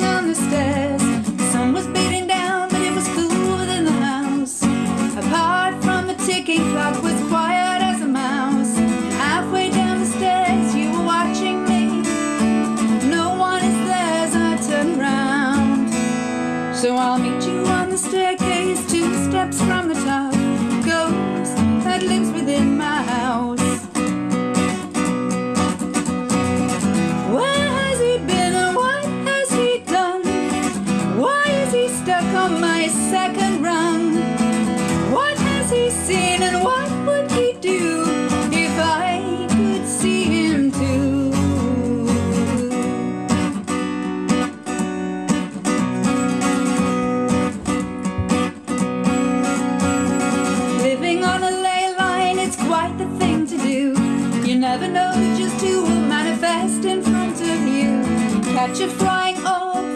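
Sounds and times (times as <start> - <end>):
woman singing: 0.0 - 24.7, 26.6 - 44.4, 49.3 - 59.9
acoustic guitar strumming: 0.0 - 59.9.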